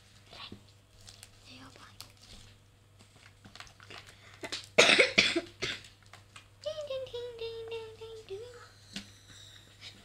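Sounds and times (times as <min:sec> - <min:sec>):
person coughing: 0:04.8 - 0:05.9.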